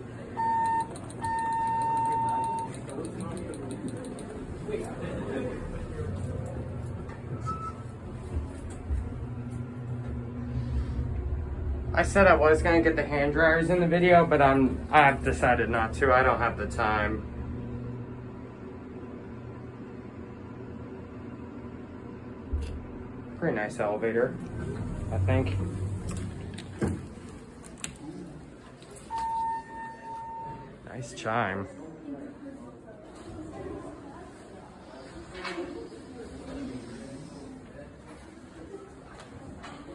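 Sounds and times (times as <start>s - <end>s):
elevator rumbling: 0.0s - 27.8s
elevator electronic chime: 0.3s - 4.2s, 7.4s - 8.0s, 29.0s - 30.8s.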